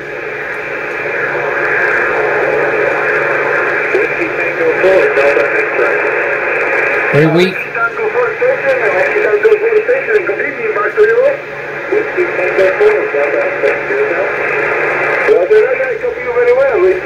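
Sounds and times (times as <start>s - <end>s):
radio static hiss: 0.0s - 17.0s
thin radio voice: 7.1s - 7.8s.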